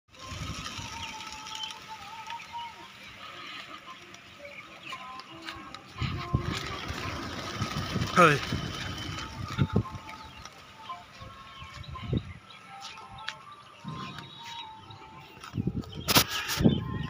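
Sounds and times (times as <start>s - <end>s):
pigeon wings flapping: 0.1s - 2.8s, 5.2s - 10.6s.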